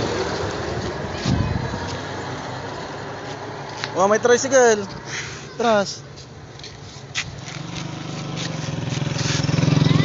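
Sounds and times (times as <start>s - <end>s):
motorcycle engine running: 7.4s - 10.0s.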